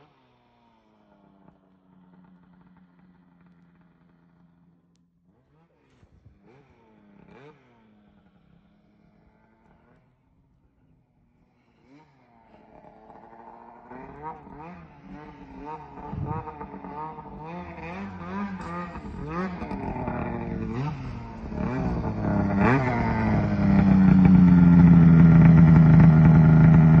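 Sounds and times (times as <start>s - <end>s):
snowmobile engine revving: 5.3s - 10.1s, 11.6s - 27.0s.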